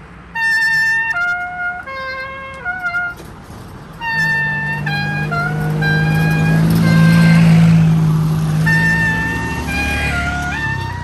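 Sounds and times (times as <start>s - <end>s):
vehicle passing by: 0.0s - 11.0s
woodwind melody: 0.3s - 3.3s, 4.0s - 11.0s.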